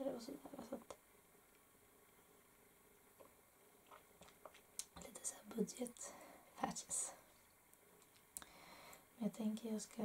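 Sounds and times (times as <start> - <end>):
woman whispering: 5.0 - 7.3.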